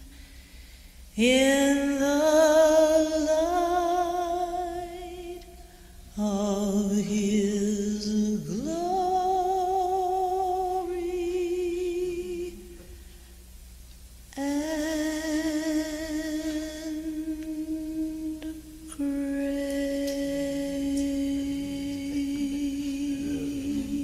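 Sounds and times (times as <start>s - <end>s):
person humming a hymn: 1.2s - 5.6s, 6.2s - 12.9s, 14.4s - 24.0s.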